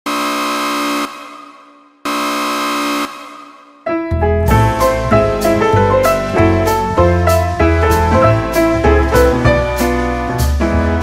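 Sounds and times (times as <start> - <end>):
synthesized horn-like notes: 0.1 - 10.3
music with piano and drums: 3.9 - 11.0.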